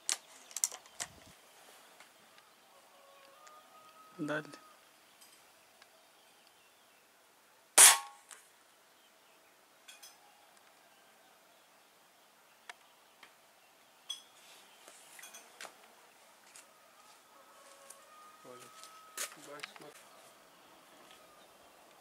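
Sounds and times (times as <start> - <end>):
air rifle shot: 7.8 - 8.2.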